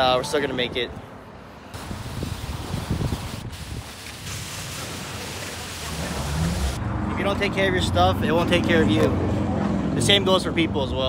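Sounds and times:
pressure wand water spray: 0:01.8 - 0:06.8.

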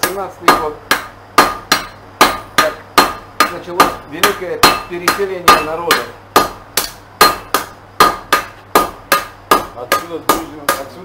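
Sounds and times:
hammer striking metal on anvil: 0:00.0 - 0:11.0.

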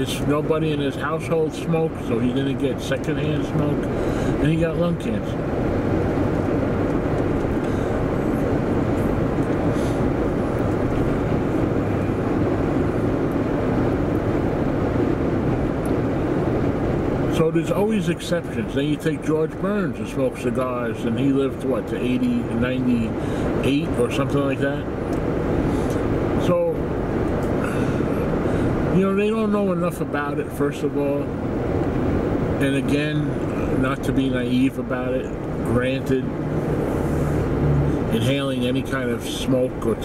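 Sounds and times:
car cabin road and engine noise: 0:00.0 - 0:40.0.

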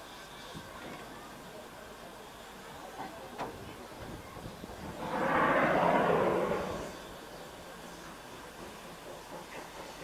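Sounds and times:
steam locomotive hissing: 0:00.0 - 0:10.0.

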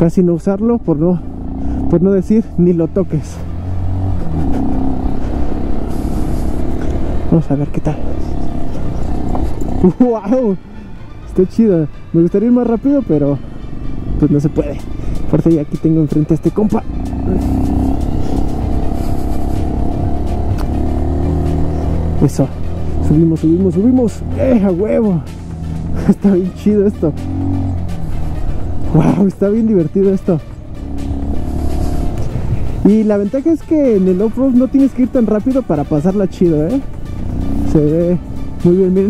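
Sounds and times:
motorcycle engine running: 0:00.0 - 0:39.0.

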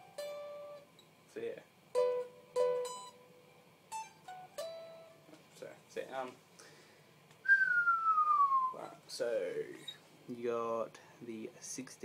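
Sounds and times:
person whistling downward slide: 0:07.5 - 0:08.8.

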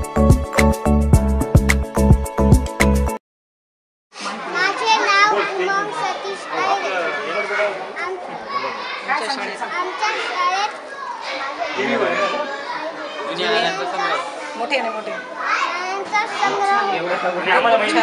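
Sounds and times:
background music: 0:00.0 - 0:03.2
children talking at once: 0:04.2 - 0:17.6.

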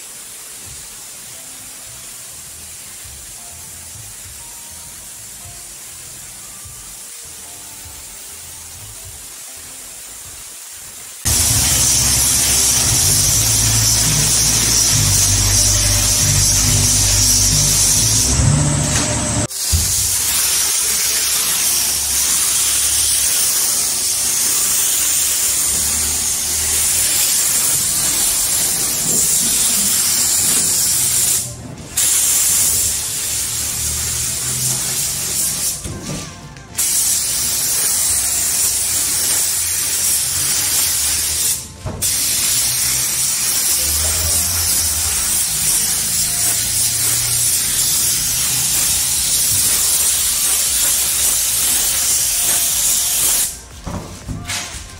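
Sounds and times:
paint spray gun hissing: 0:11.2 - 0:35.9, 0:36.8 - 0:53.8.

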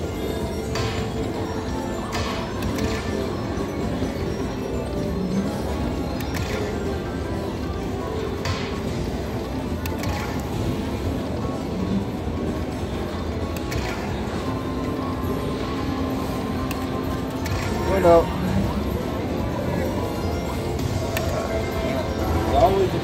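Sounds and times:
slot machine music: 0:00.0 - 0:23.0.

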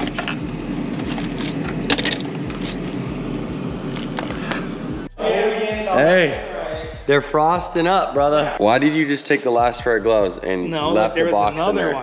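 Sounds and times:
steady rushing background noise: 0:00.0 - 0:05.1.

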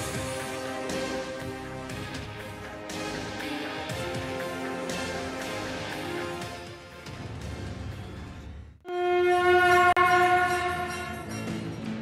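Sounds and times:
loud held horn note: 0:08.9 - 0:11.2.

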